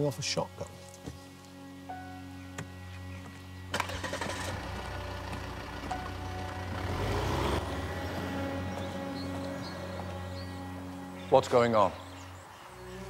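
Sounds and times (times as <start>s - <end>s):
music bed: 0.0s - 13.0s
car engine running: 3.7s - 10.3s.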